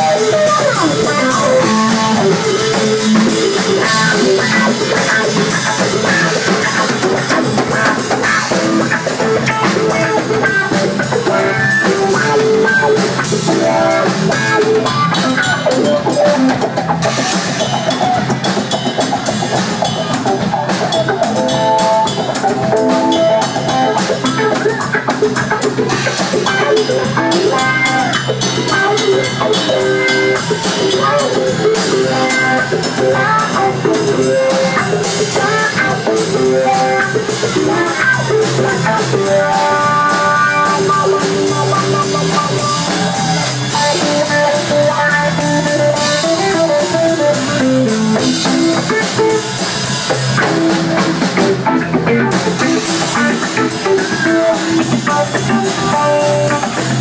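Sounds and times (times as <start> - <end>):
drum kit with cymbals and snare: 0.0 - 57.0
electric bass: 0.0 - 57.0
electric guitar riffs: 0.0 - 57.0.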